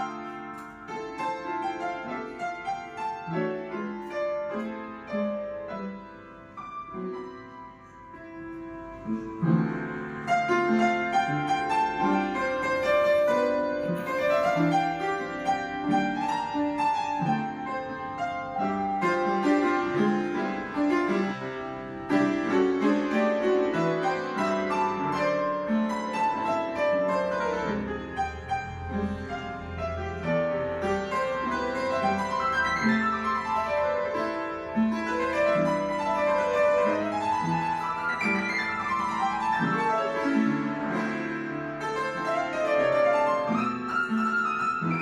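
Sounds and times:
upright piano playing: 0.0 - 45.0.

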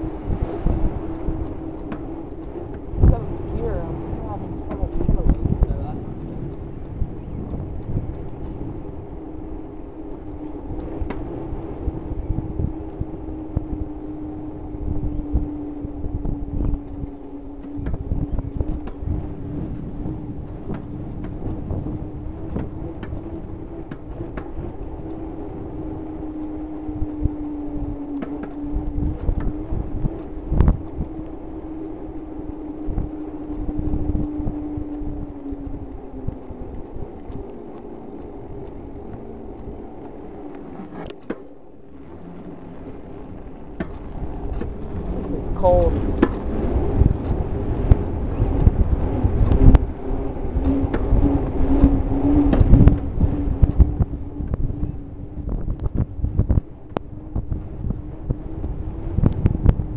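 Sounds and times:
bicycle tyre humming on asphalt: 0.0 - 59.9
wind rumble on microphone: 0.0 - 59.9.

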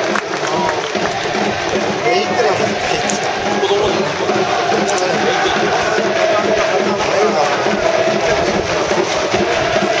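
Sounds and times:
crowd chanting: 0.0 - 10.0
steady drum beat: 0.0 - 10.0.

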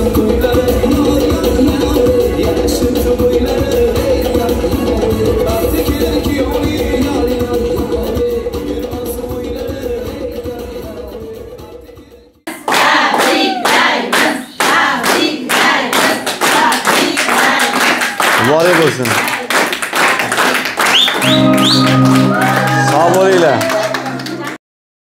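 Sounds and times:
music: 0.0 - 13.4, 20.7 - 24.6
voices singing: 12.5 - 18.2
group clapping: 12.5 - 24.6
held musical tone: 21.2 - 24.6.

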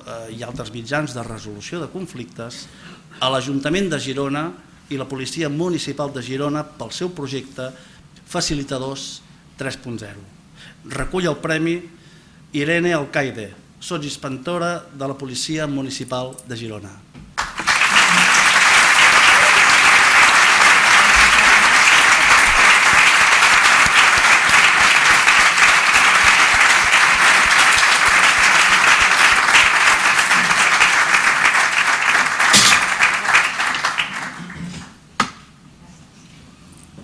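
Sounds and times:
audience applauding: 17.4 - 34.9.

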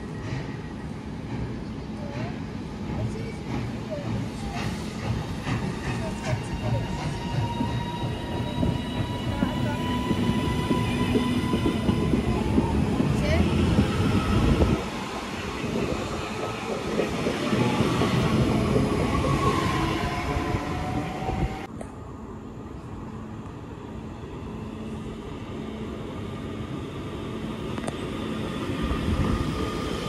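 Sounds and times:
train wheels rumbling on rail: 0.0 - 21.8, 24.8 - 30.0
electric train whine: 3.5 - 30.0.

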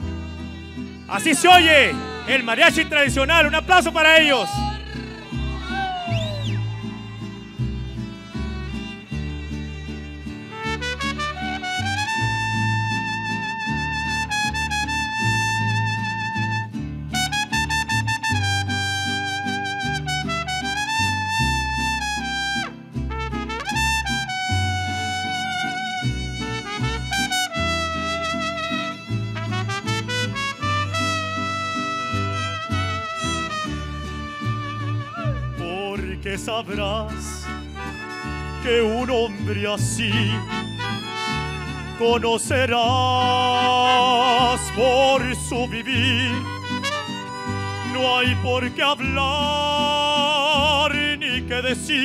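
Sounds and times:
violins: 0.0 - 14.2, 24.5 - 35.6, 37.4 - 45.5, 46.2 - 48.1
plucked bass guitar: 0.0 - 20.1, 31.8 - 52.0
strummed guitars: 0.0 - 52.0
trumpet melody: 1.1 - 7.3, 10.5 - 51.0.

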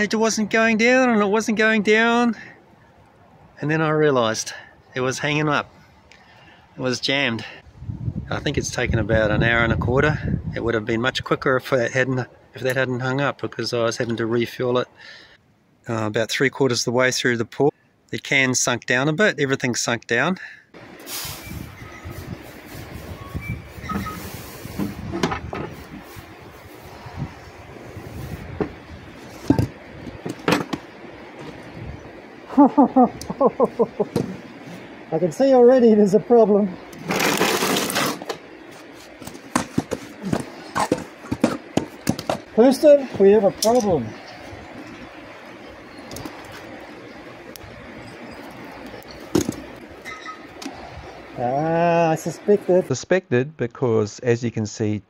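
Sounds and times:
sand pouring into steel box: 21.0 - 22.9.

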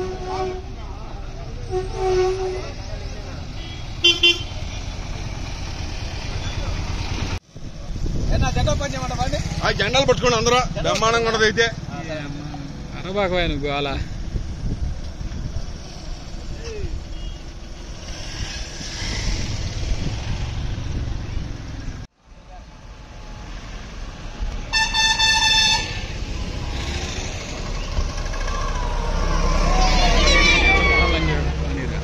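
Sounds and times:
vehicle horn: 0.0 - 0.9, 1.6 - 2.9, 3.5 - 4.6, 17.1 - 17.5, 24.7 - 26.2
vehicle engines rumbling: 0.0 - 32.0
voices: 27.4 - 32.0.

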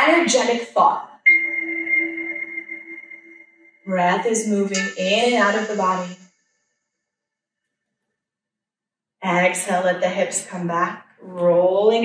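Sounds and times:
chime-like ringing tone: 1.3 - 3.9.

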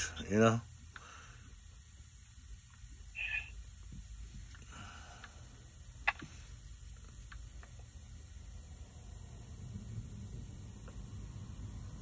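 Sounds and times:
steady low rumble: 1.4 - 12.0.

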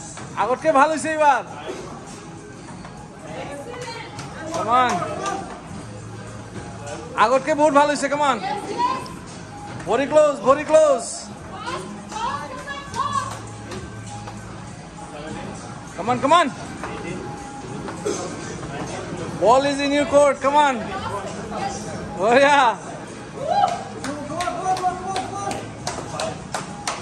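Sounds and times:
background music: 0.0 - 27.0.

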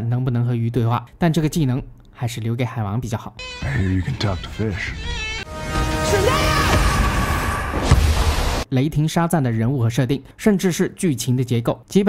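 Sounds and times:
man speaking: 0.0 - 5.3.

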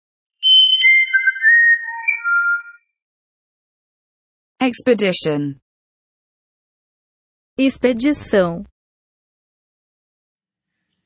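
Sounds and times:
whistle-like jingle tones: 0.4 - 3.0.

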